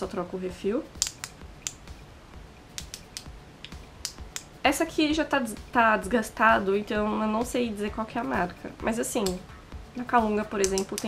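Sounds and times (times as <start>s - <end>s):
plastic eraser pen clicking: 1.0s - 1.4s, 10.6s - 11.0s.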